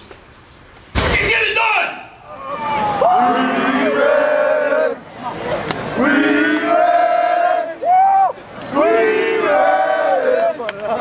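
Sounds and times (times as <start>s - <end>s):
group of men shouting in unison: 2.3s - 5.0s, 6.0s - 10.6s.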